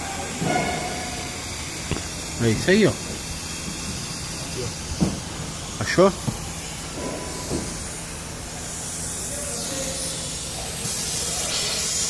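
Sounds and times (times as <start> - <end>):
compressed air hissing: 0.0 - 12.0.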